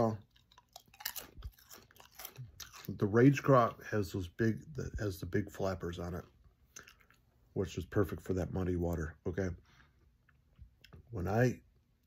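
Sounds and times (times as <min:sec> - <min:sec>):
person chewing crisp chip: 0:00.0 - 0:03.6, 0:06.7 - 0:07.3.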